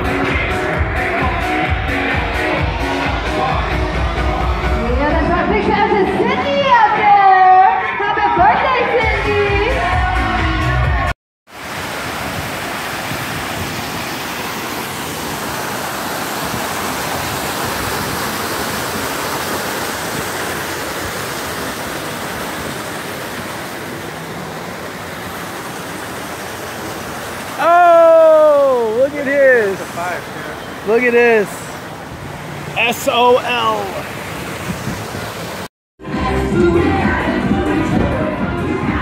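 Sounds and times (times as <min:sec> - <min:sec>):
pop music with singing: 0:00.0 - 0:11.1, 0:36.0 - 0:39.0
running water rushing: 0:11.5 - 0:39.0.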